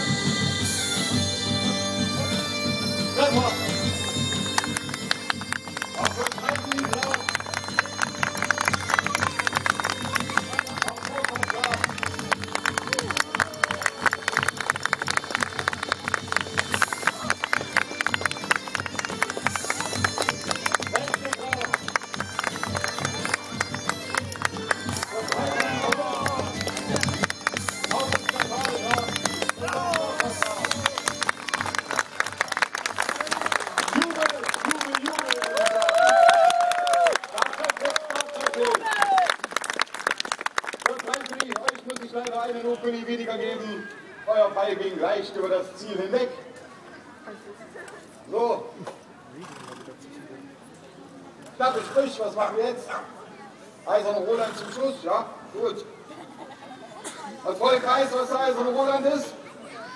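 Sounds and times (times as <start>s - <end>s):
bagpipe music with drone: 0.0s - 35.4s
voices calling out: 3.1s - 36.7s.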